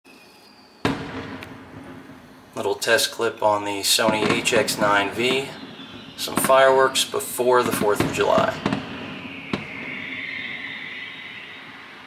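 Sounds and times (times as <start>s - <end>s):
firework shell bursting: 0.8s - 2.3s.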